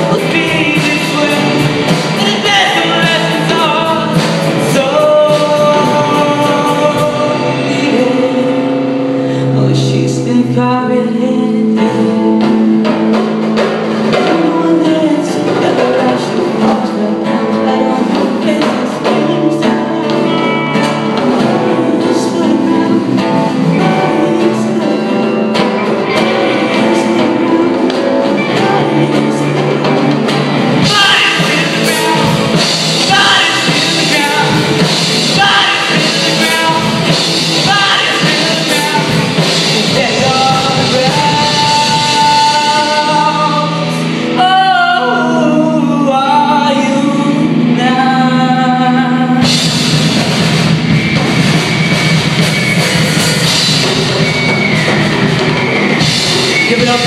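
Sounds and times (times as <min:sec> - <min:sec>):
lead vocal singing: 0:00.0 - 0:57.0
live rock band playing: 0:00.0 - 0:57.0.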